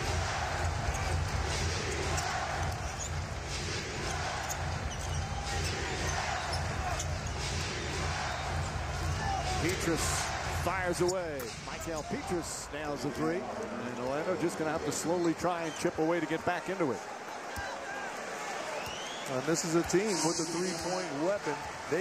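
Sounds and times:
arena crowd hubbub: 0.0s - 22.0s.

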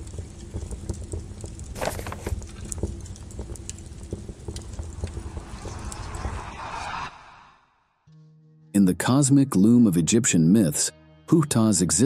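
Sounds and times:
crackles and sharp clicks: 0.0s - 6.7s
low rumble: 0.0s - 8.0s
rushing swell: 4.9s - 8.0s.

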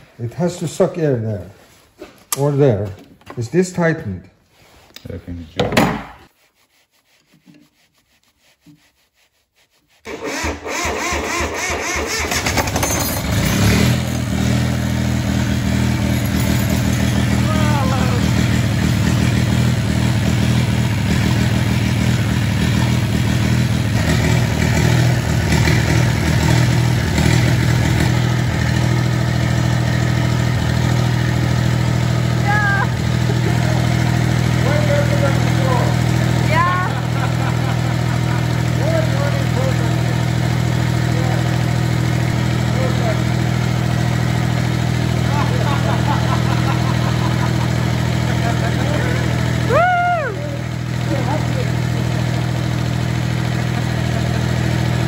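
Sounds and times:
diesel generator running: 10.1s - 55.0s
starter cranking engine: 10.1s - 55.0s.

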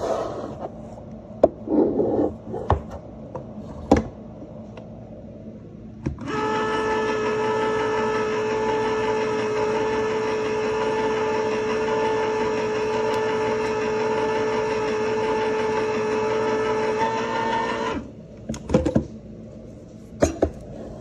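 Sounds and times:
electric can opener motor humming: 6.2s - 18.1s.

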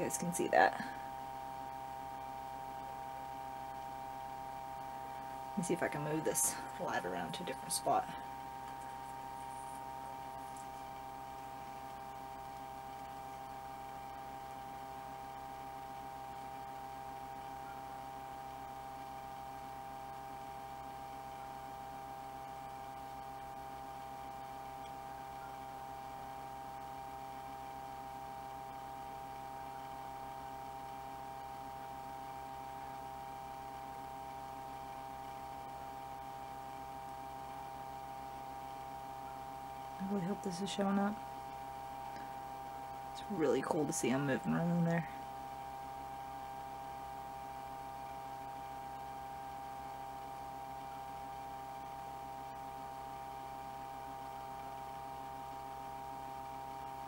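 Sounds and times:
electrical hum with whine: 0.0s - 57.0s.

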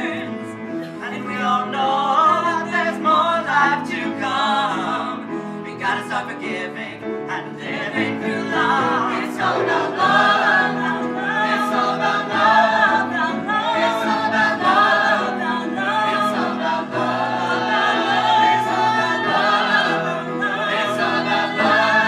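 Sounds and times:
piano accompaniment: 0.0s - 22.0s
vocal ensemble singing in harmony: 0.0s - 22.0s.

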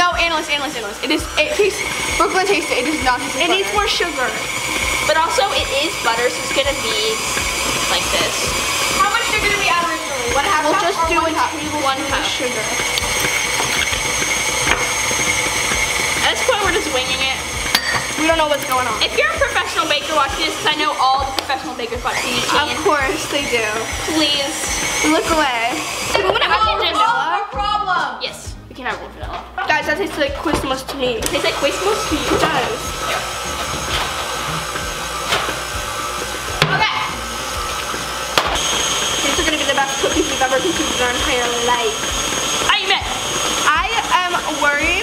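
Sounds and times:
stand mixer motor whining: 0.0s - 27.5s, 29.6s - 45.0s.

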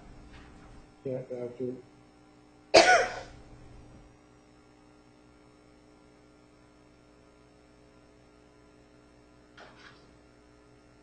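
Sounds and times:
sharp cough: 2.7s - 3.4s.

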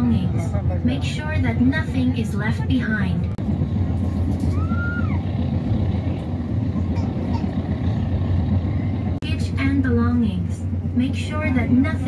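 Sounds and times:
recorded onboard announcement: 0.0s - 3.5s, 8.7s - 12.0s
train rumbling inside carriage: 0.0s - 12.0s.

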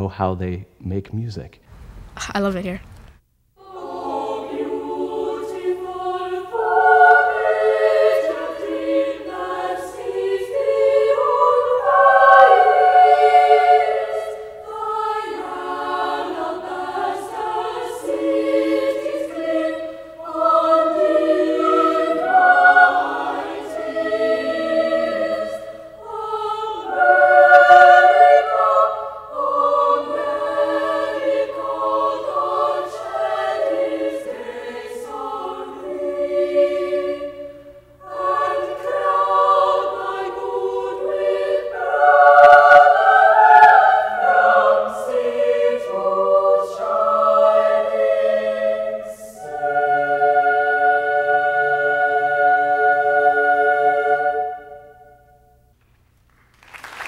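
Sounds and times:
boys' choir singing held notes: 3.6s - 55.3s.

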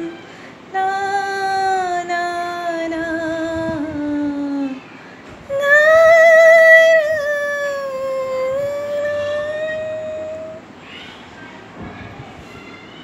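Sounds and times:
woman singing a long note: 0.0s - 4.8s, 5.5s - 10.6s.

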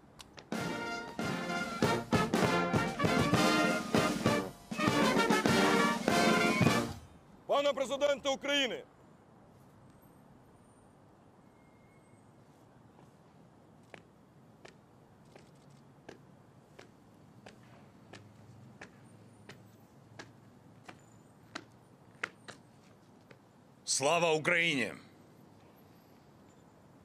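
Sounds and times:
faint open-air hush: 0.0s - 27.0s.

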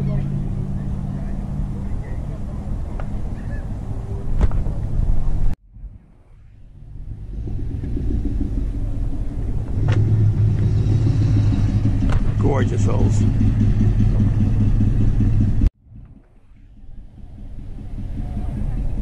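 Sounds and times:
car engine rumbling: 0.0s - 19.0s.

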